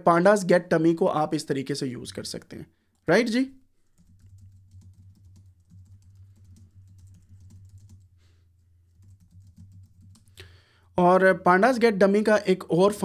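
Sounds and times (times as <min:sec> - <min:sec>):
computer keyboard typing: 0:03.8 - 0:10.4.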